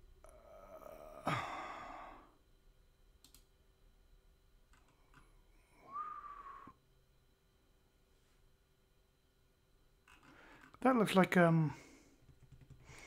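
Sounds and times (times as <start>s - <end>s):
breathy sigh: 0.2s - 2.4s, 5.7s - 6.8s
soft clicks: 3.2s - 3.5s
brief whistle-like tone: 5.8s - 6.8s.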